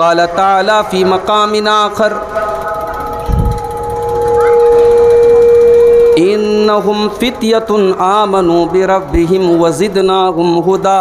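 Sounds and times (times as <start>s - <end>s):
microphone feedback ringing tone: 2.5s - 7.2s.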